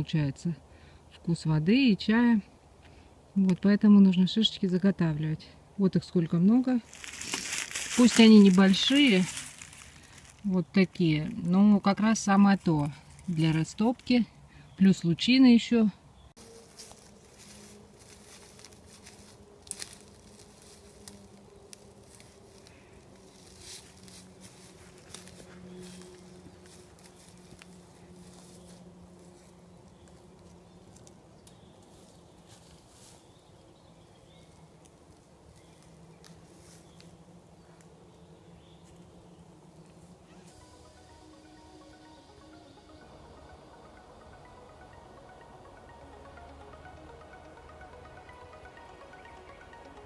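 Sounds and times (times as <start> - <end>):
dry leaves crackling: 6.6 - 14.5, 16.4 - 43.0
flying insect buzzing: 38.7 - 50.0.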